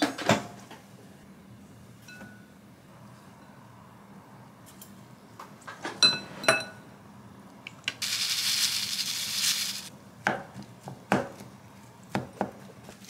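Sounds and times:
seasoning shaken from plastic packet: 0:08.0 - 0:09.9.

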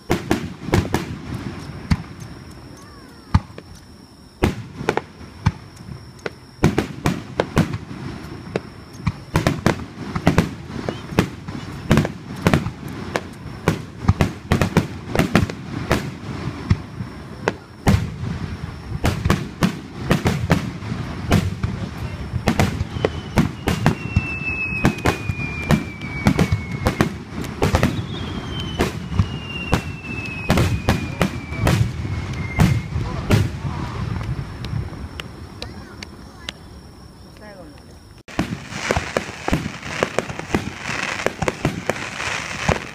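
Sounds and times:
firework shells bursting: 0:38.2 - 0:42.9.

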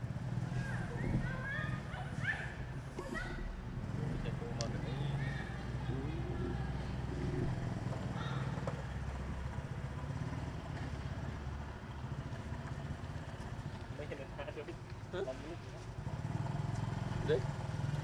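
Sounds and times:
low engine hum: 0:00.0 - 0:18.0.

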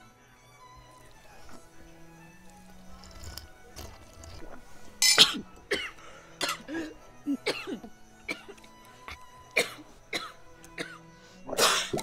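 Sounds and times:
soft background music: 0:00.0 - 0:12.0
people coughing: 0:05.0 - 0:12.0.

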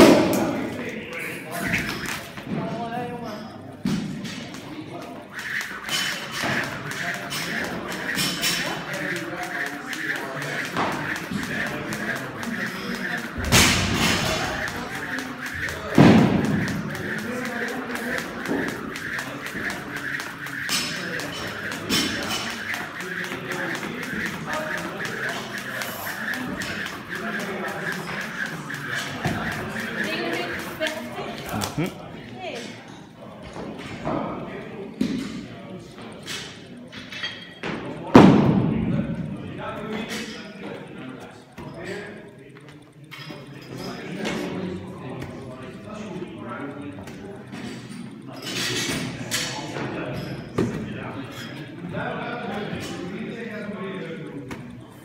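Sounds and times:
jump rope whirring and ticking: 0:00.0 - 0:02.4, 0:04.0 - 0:32.1, 0:37.9 - 0:55.0.

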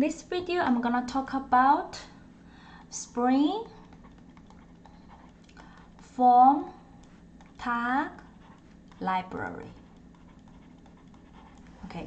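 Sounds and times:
steady low hum: 0:00.0 - 0:12.0
stylus ticks on tablet: 0:02.7 - 0:06.4, 0:07.0 - 0:11.8.

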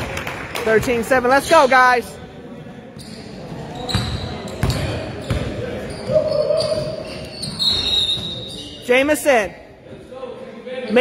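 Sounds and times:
murmur of voices: 0:00.0 - 0:11.0
high short squeaks: 0:03.0 - 0:08.9
basketball bouncing on gym floor: 0:03.9 - 0:07.6.

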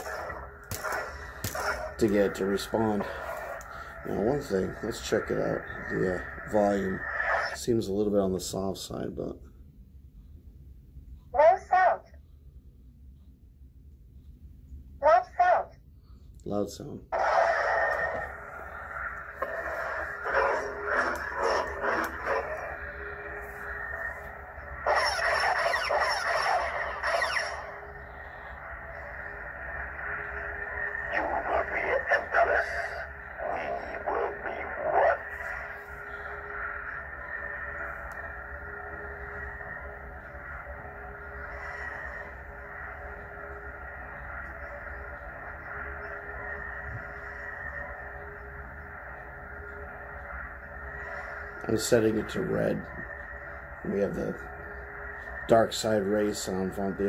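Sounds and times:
lightsaber effect sounds: 0:00.0 - 0:07.6, 0:17.2 - 0:57.0
lightsaber blade hum: 0:00.0 - 0:07.8, 0:17.2 - 0:57.0.

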